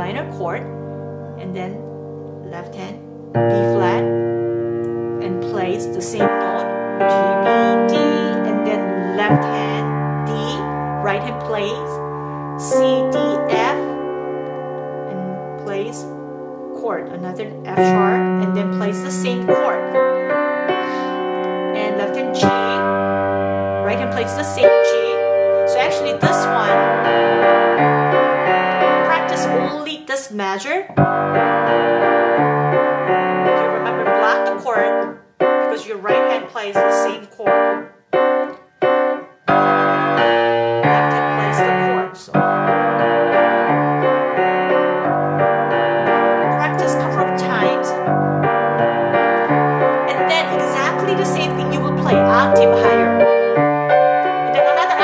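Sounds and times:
piano piece: 0.0 - 30.1, 30.8 - 55.0.

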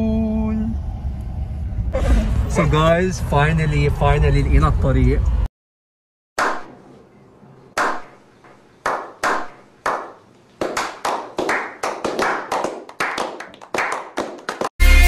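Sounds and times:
hand claps: 7.8 - 8.1, 8.8 - 14.7
people clapping: 8.8 - 14.7.

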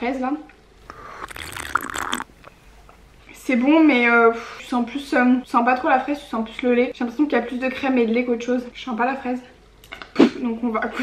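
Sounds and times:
slurping through metal straw: 0.8 - 2.4.

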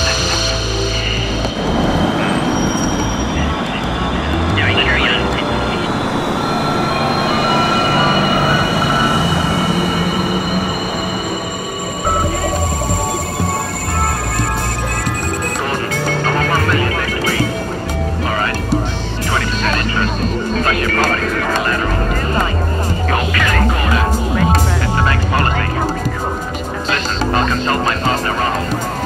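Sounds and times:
large vehicle passing close: 0.0 - 14.1
high-pitched whining tones: 0.0 - 29.0
murmur of voices: 0.0 - 29.0
street traffic noise: 0.0 - 29.0.

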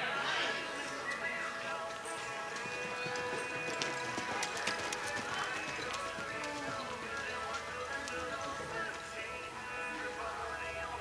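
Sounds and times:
music playing: 0.0 - 11.0
horse hoofbeats on dirt: 0.8 - 9.3.

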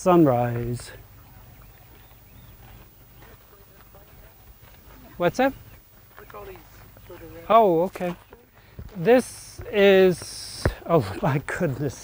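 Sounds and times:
distant people talking: 0.0 - 11.8.

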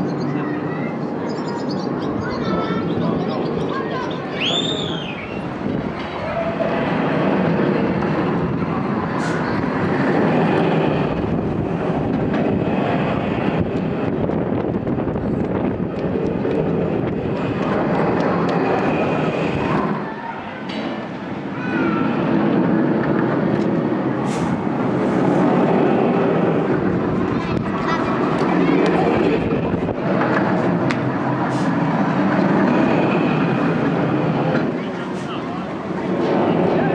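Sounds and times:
roller coaster rumbling on track: 0.0 - 36.9.

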